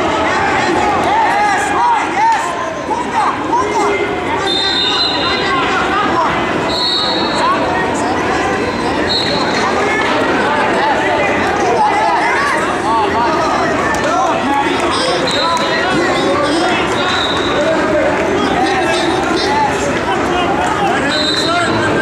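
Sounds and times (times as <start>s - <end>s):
people shouting and chattering: 0.0s - 22.0s.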